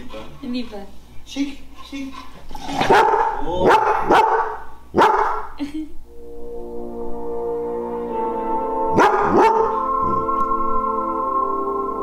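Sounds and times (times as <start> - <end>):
dog barking: 2.8 - 5.5, 8.9 - 9.8
background music with held notes: 6.0 - 12.0.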